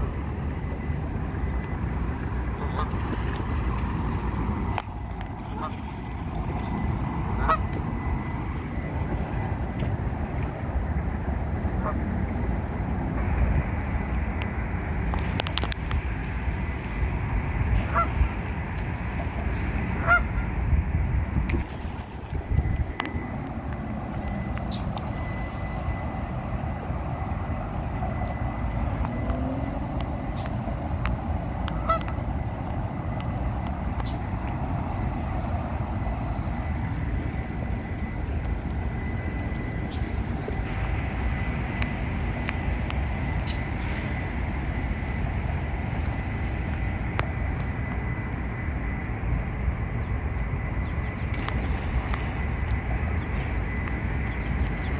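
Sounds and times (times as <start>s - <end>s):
steady low rumble: 0.0s - 54.9s
geese honking: 1.9s - 4.8s, 5.4s - 9.4s, 11.7s - 12.5s, 17.6s - 20.6s, 31.7s - 32.2s.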